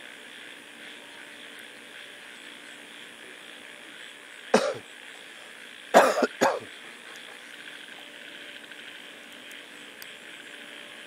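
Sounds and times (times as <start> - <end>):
person coughing: 4.6 - 4.8, 6.0 - 6.7.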